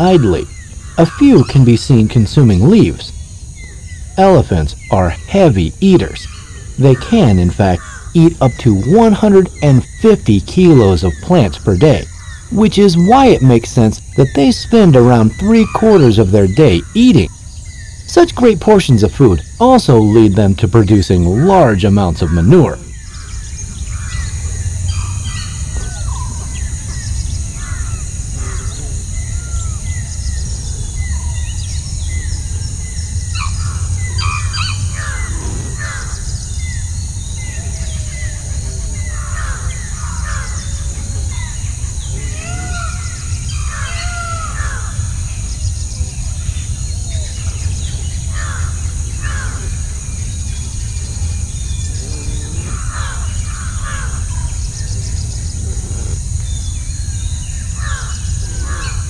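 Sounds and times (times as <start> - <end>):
crow-like calls: 0.0 - 1.7, 6.2 - 9.2, 21.2 - 30.1, 33.3 - 36.8, 37.5 - 45.3, 47.0 - 56.6, 57.5 - 59.0
high insect drone: 0.0 - 59.0
wild birds chirping: 0.0 - 59.0.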